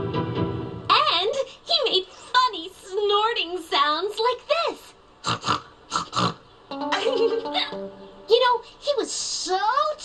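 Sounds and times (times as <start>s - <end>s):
cartoon voice snorting: 5.2s - 6.4s
plucked guitar notes: 6.7s - 8.3s.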